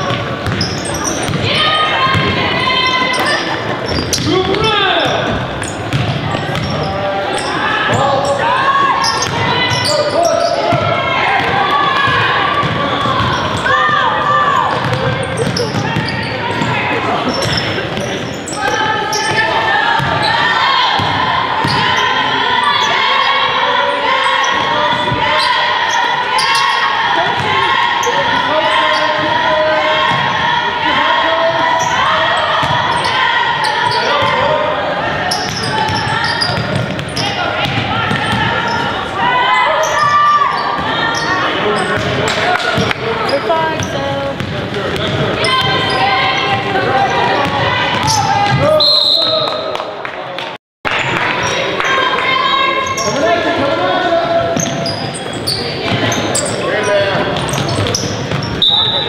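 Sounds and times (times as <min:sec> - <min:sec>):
people calling out in echoing gym: 0:00.0 - 0:50.3, 0:51.0 - 0:59.0.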